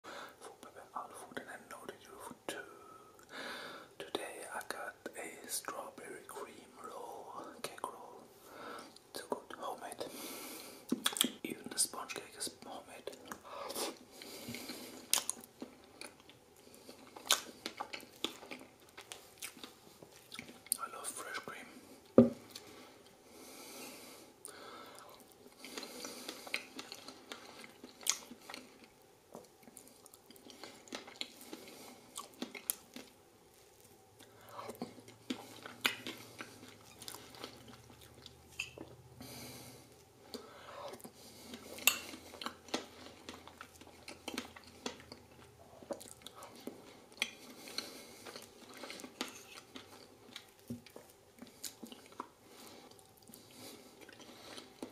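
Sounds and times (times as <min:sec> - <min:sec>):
chewing and wet mouth sounds: 0:10.9 - 0:23.2, 0:24.4 - 0:54.9.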